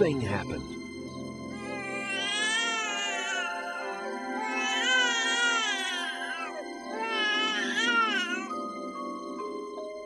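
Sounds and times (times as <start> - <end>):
soft background music: 0.0 - 10.0
newborn baby crying: 1.5 - 8.7.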